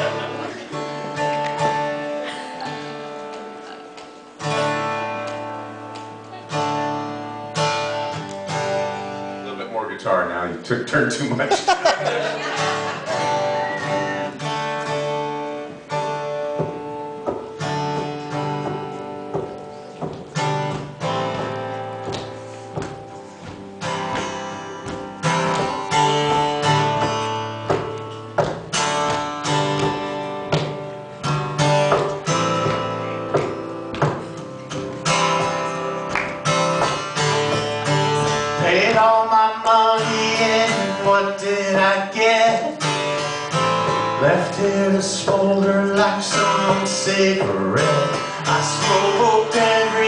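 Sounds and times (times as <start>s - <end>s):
acoustic guitar strumming chords: 0.0s - 10.2s, 12.0s - 50.0s.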